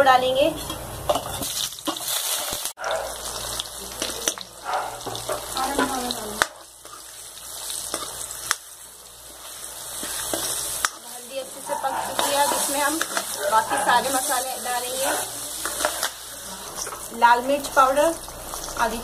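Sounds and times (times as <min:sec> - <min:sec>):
seeds sizzling in hot oil: 0:00.7 - 0:19.0.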